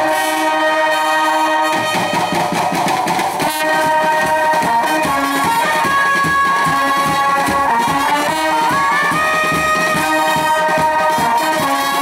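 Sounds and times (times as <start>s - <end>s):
side drum and bass drum beats: 0.0s - 12.0s
trumpets and horns: 0.0s - 12.0s.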